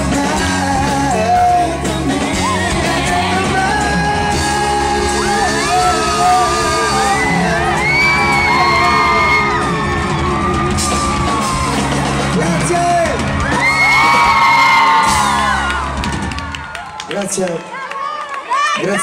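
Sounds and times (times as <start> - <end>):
man singing: 0.0 - 10.7
live pop band playing: 0.0 - 17.4
crowd whooping and screaming: 2.2 - 19.0.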